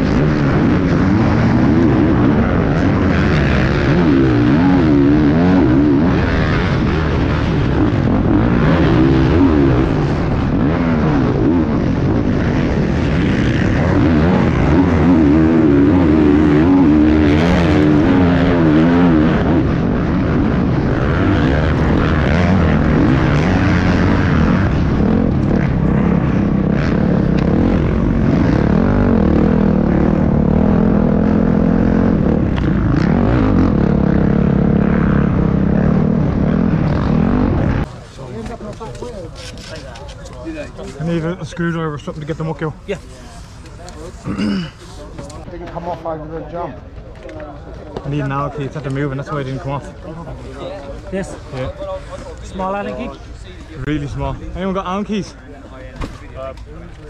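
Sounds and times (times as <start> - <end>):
dirt bike engine revving: 0.0 - 38.0.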